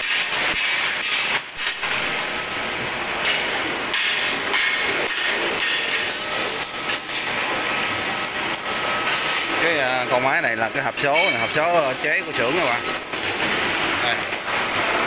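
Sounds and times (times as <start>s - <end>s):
arc welding crackling and hissing: 0.0s - 15.0s.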